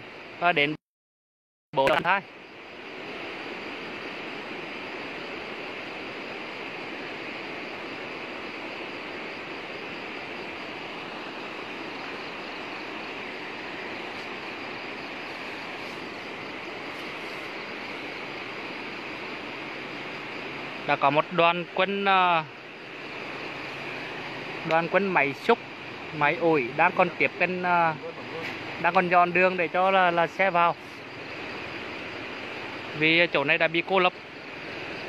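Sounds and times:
stream rushing: 1.8 - 35.0.

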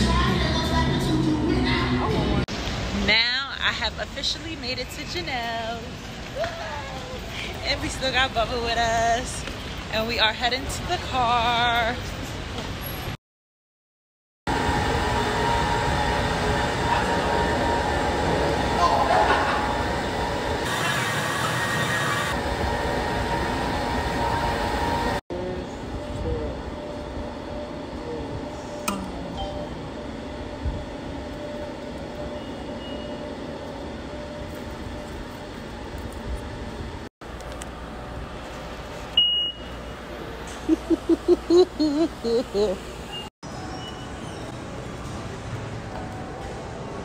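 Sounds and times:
fare gate beep: 32.2 - 33.4, 39.2 - 40.0.

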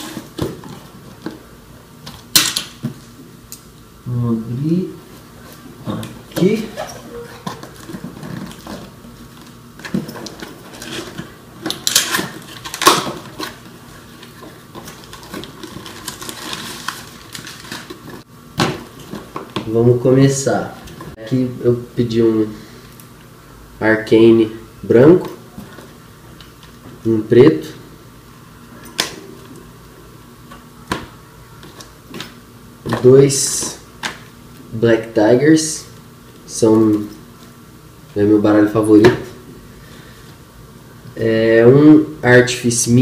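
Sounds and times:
crumpled paper rustling: 6.4 - 18.2
cardboard ripping: 10.3 - 18.2.

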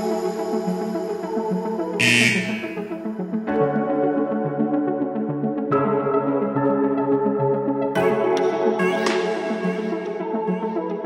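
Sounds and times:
electronic music with steady beat: 2.0 - 3.0
interval timer buzzer: 2.0 - 3.0.

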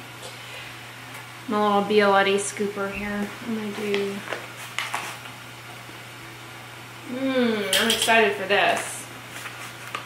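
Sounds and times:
steady hiss and hum: 0.0 - 10.0.

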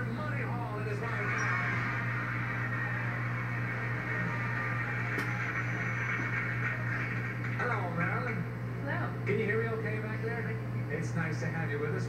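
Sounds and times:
low electrical hum: 0.0 - 12.0
audience applause through tv speaker: 1.2 - 7.7.

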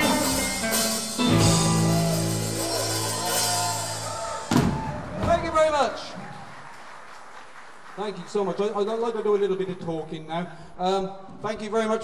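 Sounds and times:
audience applauding: 1.8 - 9.2.

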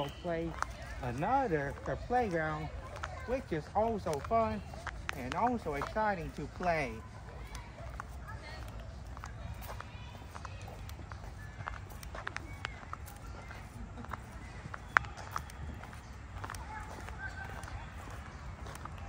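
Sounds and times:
faint distant voices: 0.0 - 19.0
footsteps on a path: 0.0 - 19.0.

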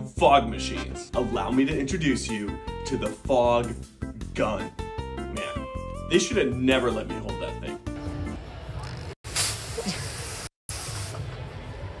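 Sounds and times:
background music: 0.0 - 8.8
fog gun hissing spray: 9.3 - 11.3.

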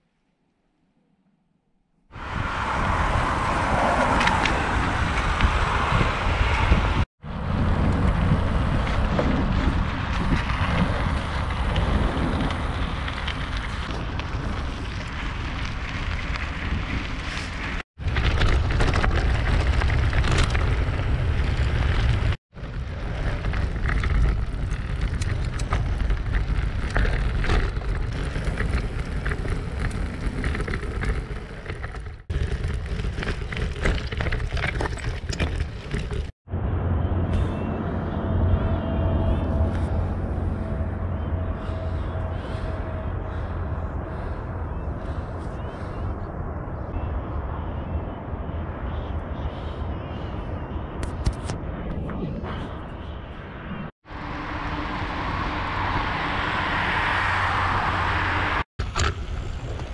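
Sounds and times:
wind on microphone: 2.1 - 59.9
tyres crackling over stones: 8.7 - 36.4.

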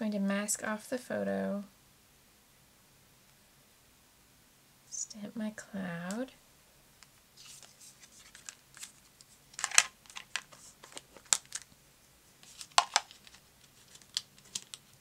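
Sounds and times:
paper rustling: 7.4 - 11.7, 12.4 - 15.0
sharp plastic clacks: 9.6 - 11.7, 12.6 - 13.4.

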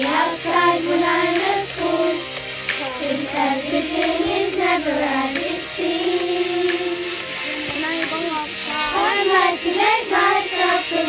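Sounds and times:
backing music: 0.0 - 11.0
child singing: 2.8 - 11.0.

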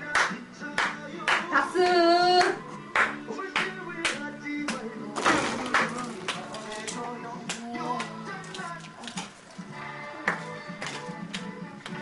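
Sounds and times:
hands clapping along: 0.0 - 1.7, 2.4 - 4.9, 5.6 - 9.4, 10.2 - 12.0
music playing: 0.0 - 12.0.

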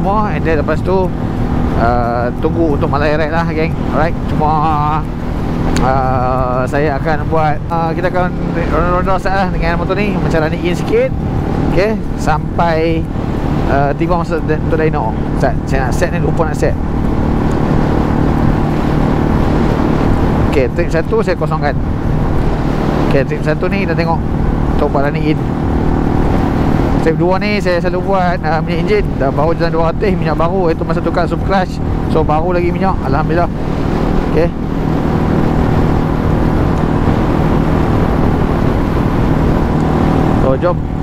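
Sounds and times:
motorcycle engine running: 0.0 - 41.0
wind on microphone: 0.0 - 41.0.

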